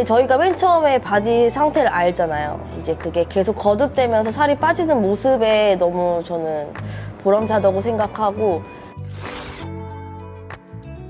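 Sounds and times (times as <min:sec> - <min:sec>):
background music with sustained tones: 0:00.0 - 0:11.0.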